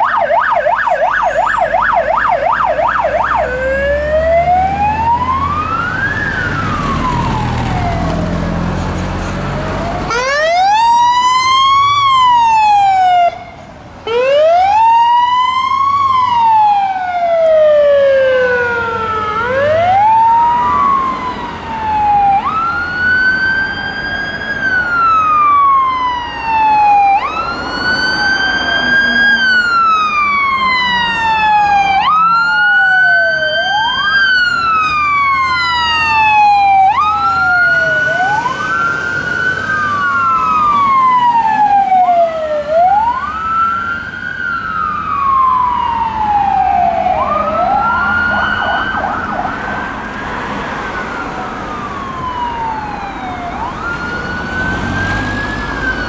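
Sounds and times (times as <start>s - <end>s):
fire engine sirens wailing: 0.0s - 56.0s.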